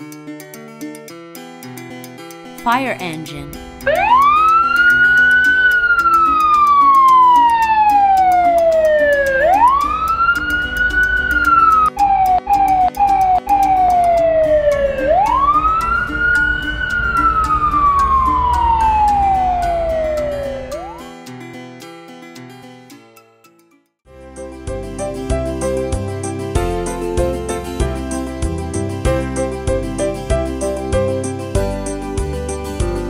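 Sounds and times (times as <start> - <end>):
toy siren wailing: 3.9 - 21.0.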